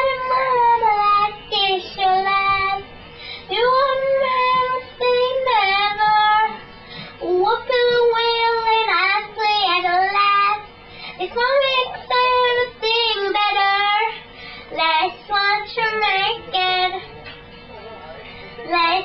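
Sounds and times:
girl singing in a high voice: 0.0 - 2.8, 3.5 - 6.6, 7.2 - 17.0, 18.7 - 19.0.

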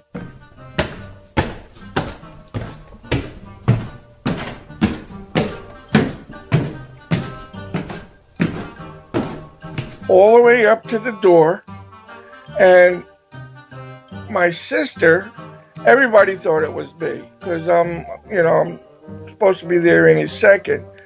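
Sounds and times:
heavy footsteps climbing stairs: 0.0 - 10.5.

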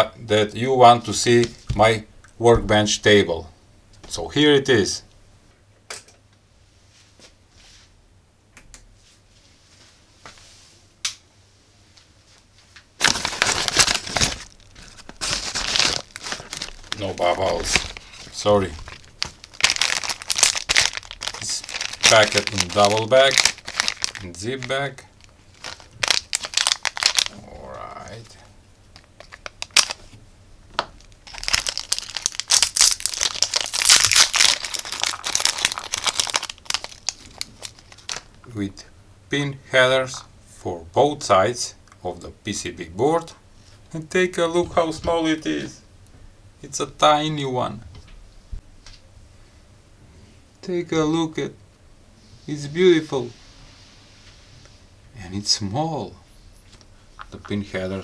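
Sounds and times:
plastic mailer bag crinkling: 13.0 - 28.3, 29.0 - 30.1, 31.0 - 38.4.

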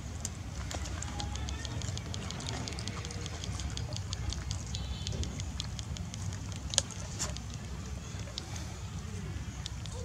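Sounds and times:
crackling clicks: 1.0 - 8.5.

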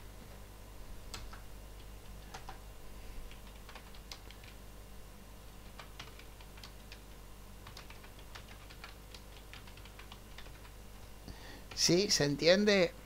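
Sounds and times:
typing on computer keyboard: 2.2 - 2.6, 3.3 - 4.6, 5.7 - 7.0, 7.6 - 10.8.

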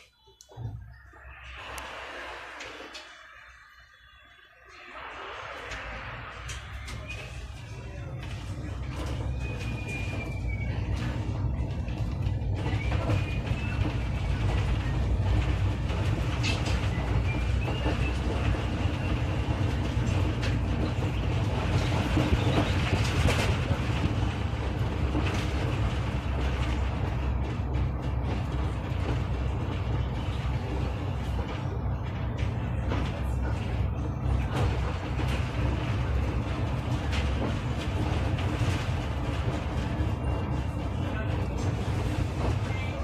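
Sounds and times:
bus engine deep rumble: 4.6 - 43.0.

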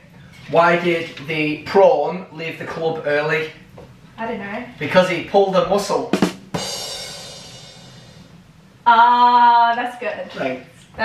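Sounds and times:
comedy drum sting: 6.0 - 8.4
crash cymbal ringing: 6.6 - 8.4.

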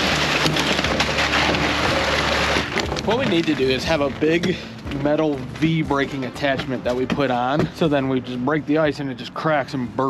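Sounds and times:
ice cracking against metal hull: 0.0 - 7.8.

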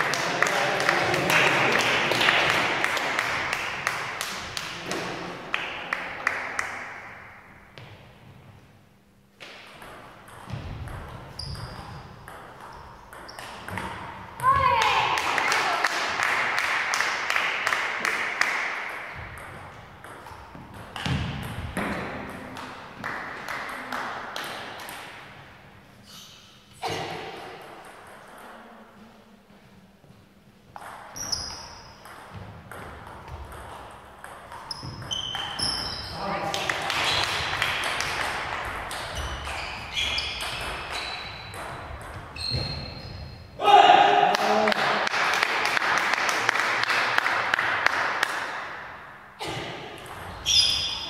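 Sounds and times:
voices and shouts echoing: 14.4 - 16.1.

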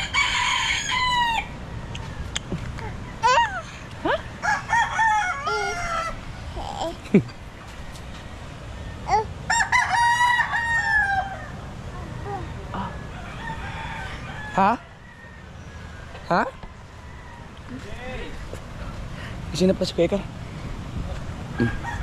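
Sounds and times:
rooster crowing: 0.0 - 1.6, 4.4 - 6.2, 9.5 - 11.6, 12.8 - 16.1, 21.5 - 22.0.

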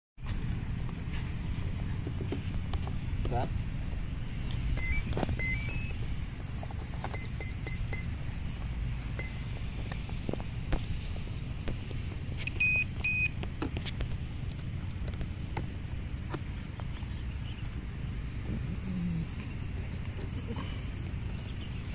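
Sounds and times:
speed controller beeping through motor: 4.7 - 6.0, 7.0 - 8.2, 9.0 - 9.6, 12.4 - 13.4.

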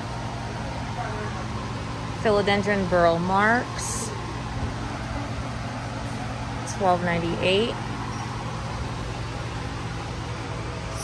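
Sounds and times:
loud fan running: 0.0 - 11.0
low hum: 0.0 - 11.0.

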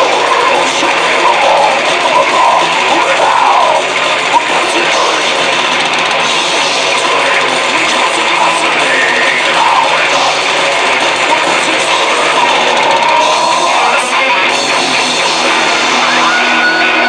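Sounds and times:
death metal band playing live: 0.0 - 17.0
wavering bending guitar line: 0.0 - 17.0.

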